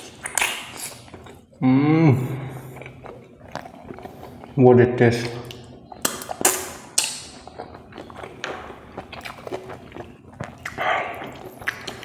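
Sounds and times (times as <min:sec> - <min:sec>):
close chewing with wet mouth clicks: 0:00.0 - 0:01.6, 0:02.6 - 0:12.0.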